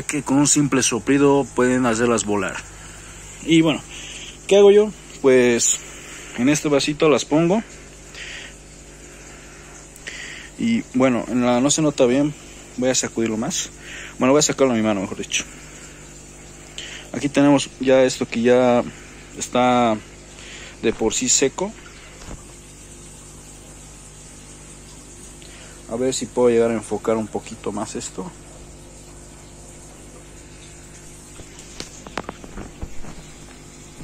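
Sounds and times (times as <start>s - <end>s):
low background hum: 0.0s - 34.0s.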